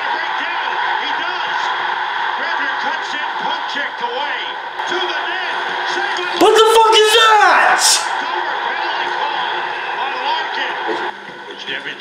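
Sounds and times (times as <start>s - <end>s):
arena crowd noise: 0.0s - 12.0s
commentator speaking: 3.2s - 8.2s.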